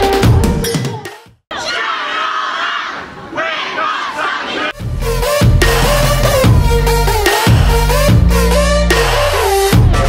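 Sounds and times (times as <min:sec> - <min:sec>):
backing music: 0:00.0 - 0:01.2, 0:04.8 - 0:10.0
crowd shouting and cheering: 0:01.5 - 0:04.9, 0:09.2 - 0:10.0.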